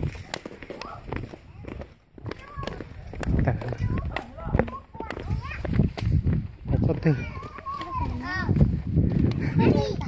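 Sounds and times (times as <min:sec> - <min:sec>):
young children talking and calling out: 0:00.0 - 0:10.0.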